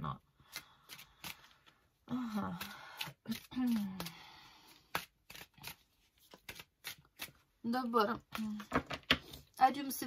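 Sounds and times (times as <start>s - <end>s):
cards being shuffled: 0.4s - 1.8s, 2.5s - 7.5s.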